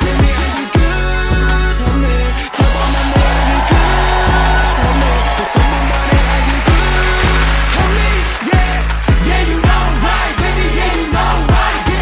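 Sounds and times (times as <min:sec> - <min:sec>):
hip-hop beat with deep bass: 0:00.0 - 0:12.0
gas jets hissing: 0:02.3 - 0:09.6.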